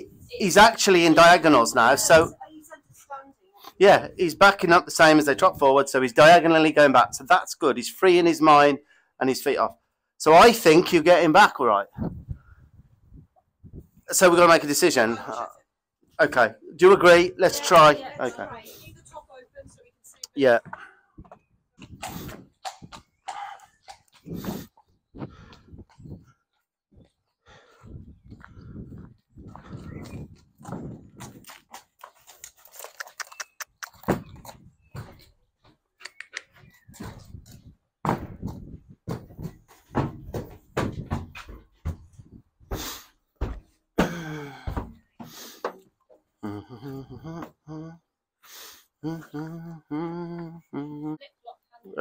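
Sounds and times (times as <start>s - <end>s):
horse hooves on concrete: 17.5s - 27.3s, 28.3s - 46.3s
hooves on trailer ramp: 20.6s - 26.4s, 27.0s - 46.3s.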